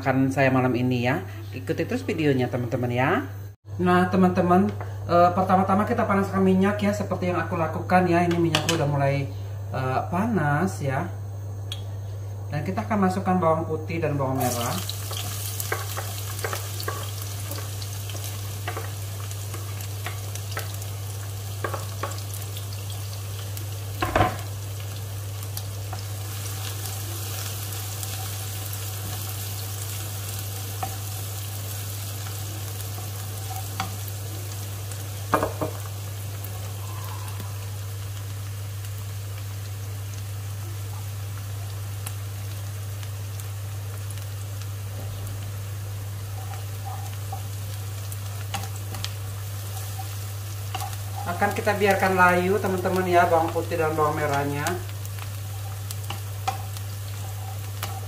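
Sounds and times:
garlic sizzling in hot oil: 14.2 - 58.0
wooden spatula stirring: 55.4 - 58.0.

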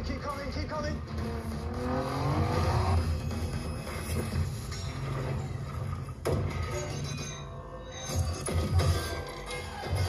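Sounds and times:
action film music and effects: 0.0 - 10.0.

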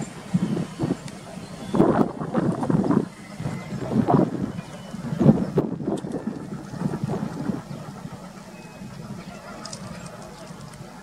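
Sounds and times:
wind on microphone: 0.0 - 10.9
train wheels rumbling on rails: 0.0 - 11.0.

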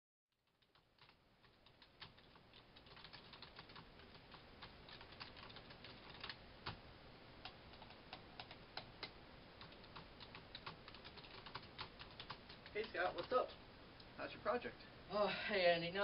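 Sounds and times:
keyboard typing: 0.4 - 6.8, 7.4 - 13.5.

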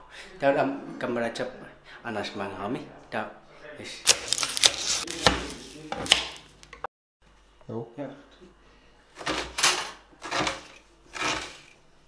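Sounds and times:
knife chopping on wooden board: 10.2 - 11.6.

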